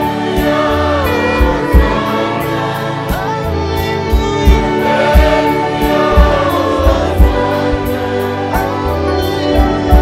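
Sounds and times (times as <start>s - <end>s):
people singing: 0.0s - 10.0s
steady drum beat: 0.0s - 10.0s
violins playing held lines: 0.0s - 10.0s.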